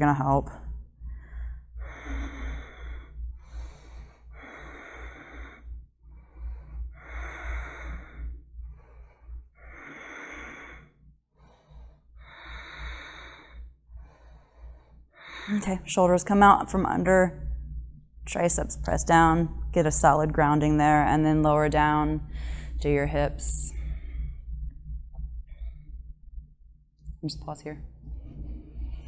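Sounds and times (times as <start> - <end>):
woman breathing deeply: 0.6 - 17.9, 22.2 - 22.9, 23.5 - 26.8.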